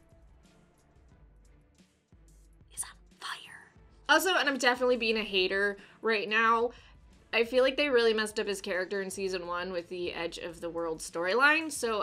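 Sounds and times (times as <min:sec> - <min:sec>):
woman whispering: 0:02.8 - 0:03.8.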